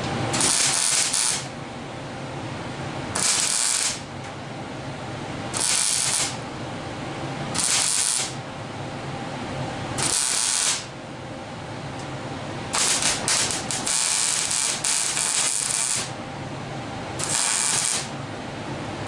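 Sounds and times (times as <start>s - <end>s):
welding arc crackling hiss: 0.3s - 1.5s, 3.2s - 4.1s, 5.5s - 6.4s, 7.6s - 8.4s, 10.0s - 10.9s, 12.7s - 16.2s, 17.2s - 18.1s.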